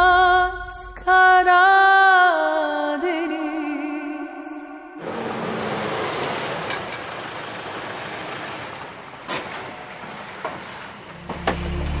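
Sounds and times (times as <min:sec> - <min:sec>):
cars driving and stopping: 0:05.0 - 0:12.0.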